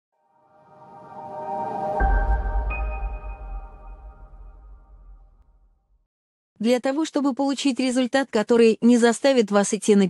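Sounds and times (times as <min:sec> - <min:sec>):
sustained synth chord: 0:00.4 - 0:05.6
deep low hit: 0:01.9 - 0:05.8.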